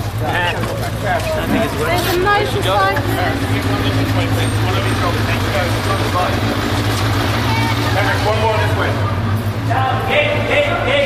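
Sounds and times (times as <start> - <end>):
crowd talking and shouting: 0.0 - 11.0.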